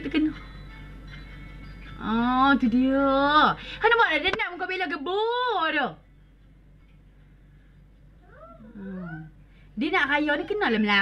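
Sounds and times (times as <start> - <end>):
woman speaking: 2.0 - 6.0, 8.8 - 11.0.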